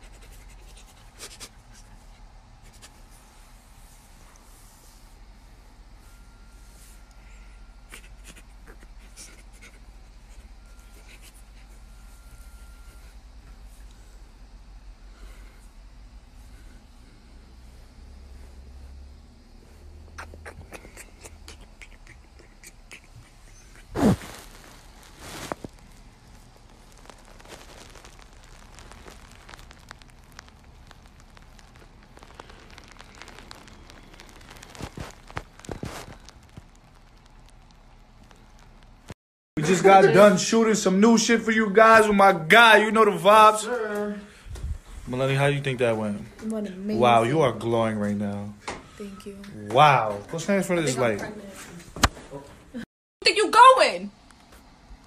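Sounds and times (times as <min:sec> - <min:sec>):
low steady hum: 0:00.0 - 0:52.8
kisses with lip smacks: 0:20.2 - 0:24.2
bedding rustling: 0:23.8 - 0:30.3.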